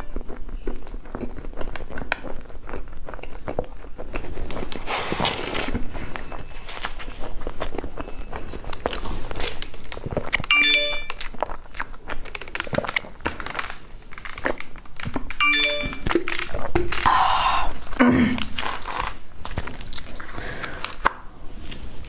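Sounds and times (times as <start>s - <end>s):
chewing and wet mouth clicks: 0.0s - 4.8s, 7.2s - 13.4s
short chime of steady tones: 10.5s - 11.2s, 15.4s - 16.1s.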